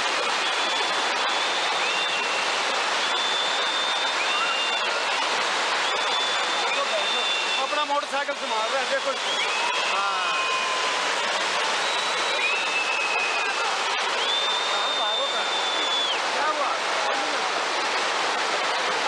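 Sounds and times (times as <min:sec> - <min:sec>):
long high whistles: 0:00.4 - 0:05.0, 0:05.8 - 0:11.0, 0:11.7 - 0:16.2
people's voices: 0:06.4 - 0:10.6, 0:12.4 - 0:19.0.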